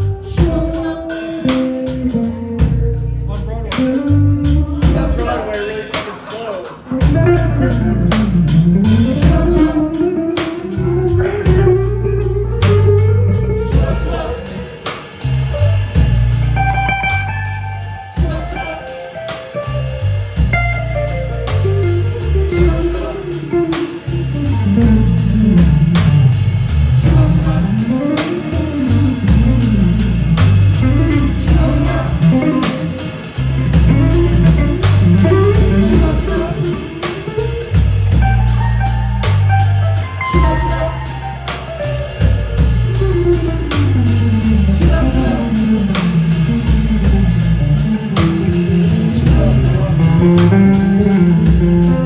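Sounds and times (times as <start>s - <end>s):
bass guitar: 0.0s - 52.0s
electric guitar lead lines: 0.0s - 52.0s
steady drum beat: 0.0s - 52.0s.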